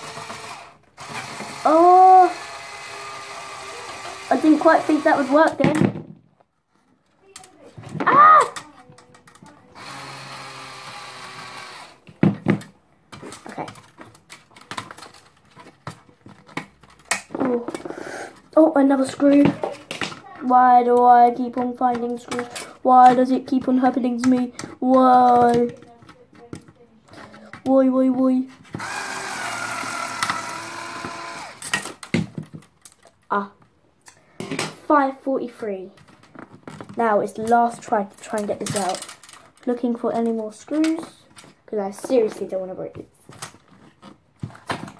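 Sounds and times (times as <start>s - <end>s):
power drill whirring: 0.0s - 5.6s, 9.8s - 12.0s, 28.7s - 32.0s
metal and plastic parts rattling: 6.8s - 9.7s, 11.3s - 27.8s, 28.5s - 34.8s, 35.9s - 44.9s.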